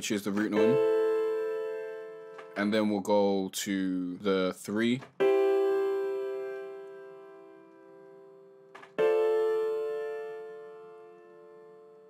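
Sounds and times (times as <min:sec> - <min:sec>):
piano chords ringing: 0:00.0 - 0:04.3, 0:05.1 - 0:12.0.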